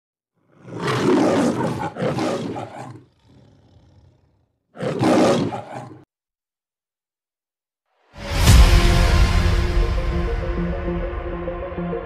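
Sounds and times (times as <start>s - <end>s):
lion roaring: 0.4s - 6.1s.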